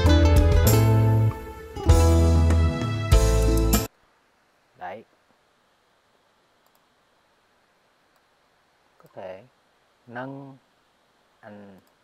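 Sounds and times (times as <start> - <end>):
computer mouse clicks: 6.6 - 6.9, 11.7 - 12.0.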